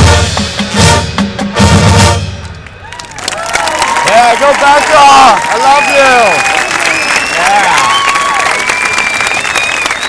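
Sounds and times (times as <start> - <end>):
bass drum and timpani hits: 0.0 - 2.5
marching band brass and drums: 0.0 - 2.9
crowd cheering and yelling: 2.4 - 10.0.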